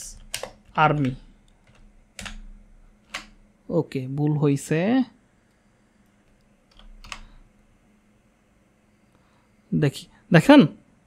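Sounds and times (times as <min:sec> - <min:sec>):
computer keyboard keystrokes: 0:00.1 - 0:03.4, 0:06.3 - 0:07.4.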